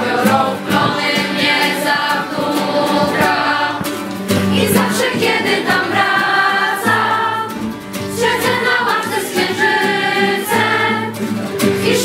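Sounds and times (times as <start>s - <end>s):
group of young voices singing: 0.0s - 12.0s
strummed acoustic guitar: 0.0s - 12.0s.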